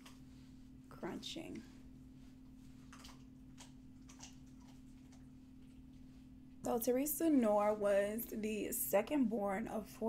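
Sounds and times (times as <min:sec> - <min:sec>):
low steady hum: 0:00.0 - 0:10.0
dog chewing on bone: 0:02.8 - 0:05.8.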